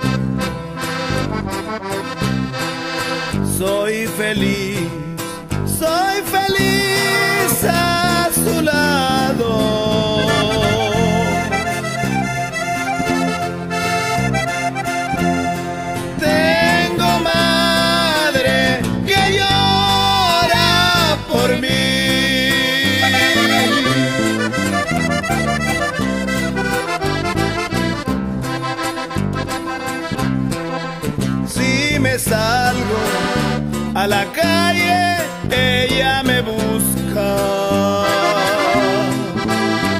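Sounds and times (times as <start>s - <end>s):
button accordion playing: 0.0s - 4.3s, 9.8s - 35.3s, 37.9s - 39.9s
bass and rhythm accompaniment: 0.0s - 39.9s.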